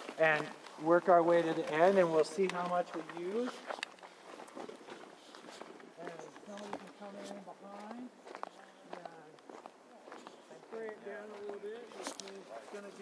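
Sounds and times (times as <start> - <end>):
footsteps on gravel: 0.0 - 13.0
people talking: 0.2 - 3.6, 6.0 - 9.3, 10.0 - 13.0.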